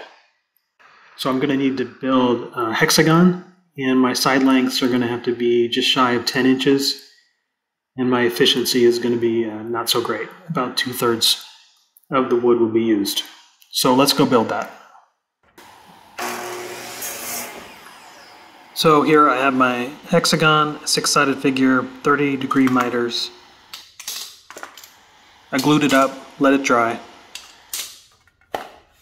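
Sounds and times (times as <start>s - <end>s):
miter saw motor whine: 15.5s - 23.8s, 24.8s - 28.1s.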